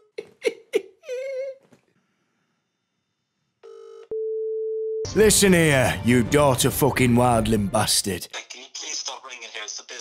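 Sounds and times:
steady phone line tone: 3.6s - 5.1s
person speaking over speakerphone: 8.0s - 10.0s.

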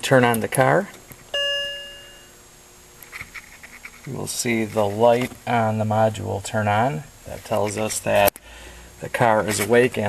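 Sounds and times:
car dashboard chime: 1.3s - 2.3s.

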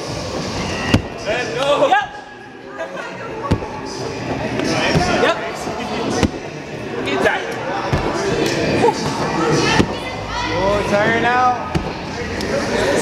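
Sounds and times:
voices chattering in echoing hall: 0.0s - 13.0s.

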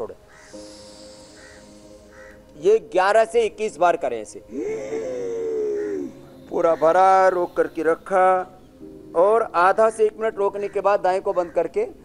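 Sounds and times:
short bird calls: 0.3s - 2.5s
soft breath exhale hiss: 0.3s - 2.6s.

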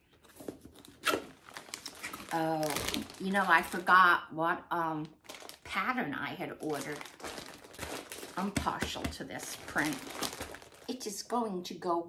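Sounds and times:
crinkling plastic: 0.2s - 4.1s, 5.0s - 11.3s
papery cardboard rustling: 6.6s - 10.9s.

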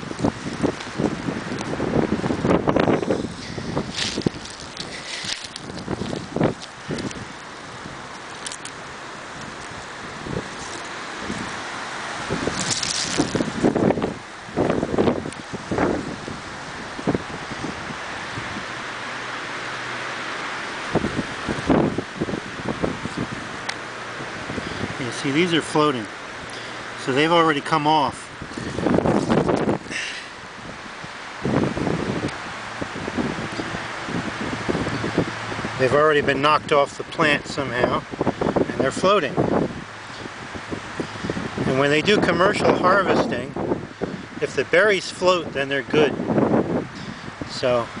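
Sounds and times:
rustling brush and shrubs: 0.0s - 48.0s
wind buffeting microphone: 0.0s - 48.0s.

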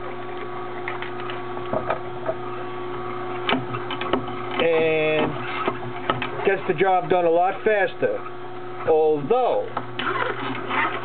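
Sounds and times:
juicer humming: 0.0s - 11.0s.

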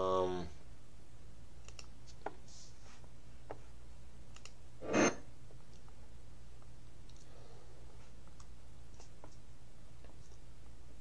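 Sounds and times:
keyboard and mouse clicks: 1.6s - 1.9s, 4.3s - 4.6s.

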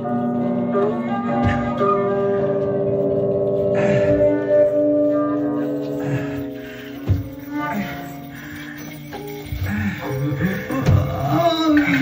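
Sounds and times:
steady held tones: 0.0s - 12.0s.

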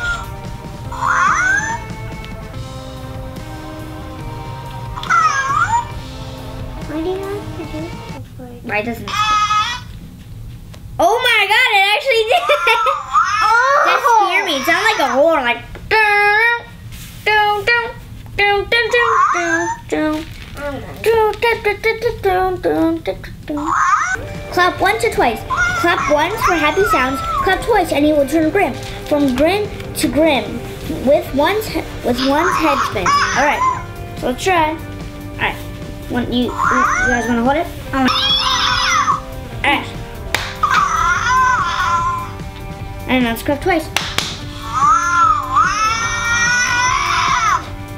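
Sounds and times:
child-like babble: 0.9s - 1.9s, 5.0s - 5.9s, 12.3s - 15.4s, 18.8s - 19.9s, 20.6s - 21.1s, 23.5s - 24.2s, 25.5s - 27.8s, 32.1s - 33.8s, 36.4s - 37.4s, 40.6s - 42.4s, 44.6s - 47.7s
high-pitched squeaky toy call: 1.0s - 1.8s, 5.0s - 6.0s, 9.1s - 9.9s, 38.1s - 39.2s
hand clap: 40.3s - 40.9s, 43.9s - 44.5s.

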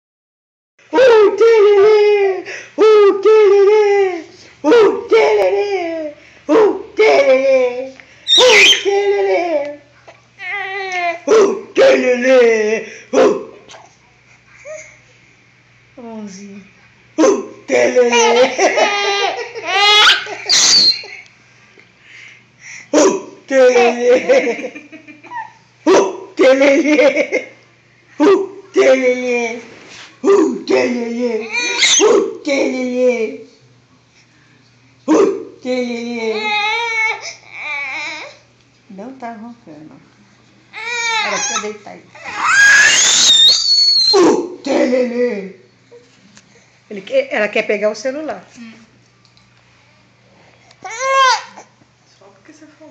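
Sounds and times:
baby laughing and squealing: 8.3s - 9.4s, 18.0s - 21.2s, 25.2s - 25.6s, 31.4s - 32.2s, 41.0s - 44.3s.

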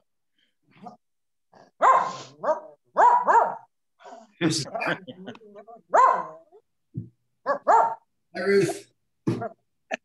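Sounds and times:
dog barking: 1.8s - 3.7s, 5.9s - 6.5s, 7.4s - 8.1s.

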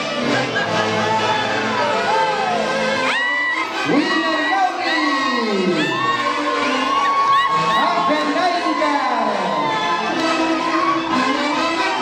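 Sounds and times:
band with saxophones and trumpets: 0.0s - 12.0s
crowd shouting and whooping: 0.0s - 12.0s.

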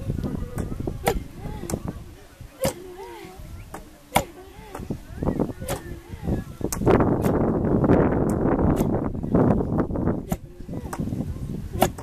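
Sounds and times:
voices: 0.0s - 12.0s
wooden pestles pounding in mortars: 3.7s - 4.9s, 11.8s - 12.0s.

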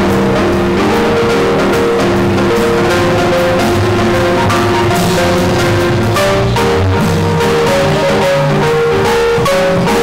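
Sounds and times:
cymbals struck: 0.0s - 8.6s
drum kit played with sticks: 0.0s - 10.0s
held melodic notes: 0.0s - 10.0s.

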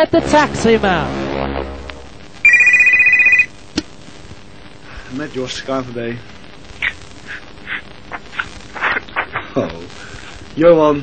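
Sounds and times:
telephone warbling ring: 2.4s - 3.5s.

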